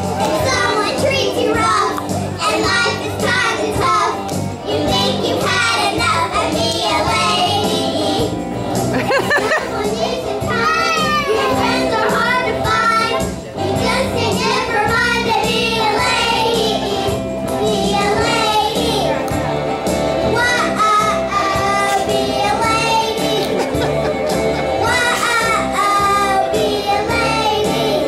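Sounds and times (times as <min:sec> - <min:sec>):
music: 0:00.0 - 0:28.0
young children singing: 0:00.1 - 0:08.4, 0:09.1 - 0:19.4, 0:20.2 - 0:28.0.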